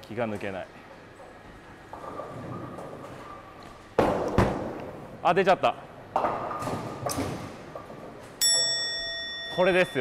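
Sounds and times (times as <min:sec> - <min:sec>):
bowling ball clatter: 0:01.8 - 0:04.9, 0:06.1 - 0:08.7
bell-like chime ringing: 0:08.4 - 0:10.0.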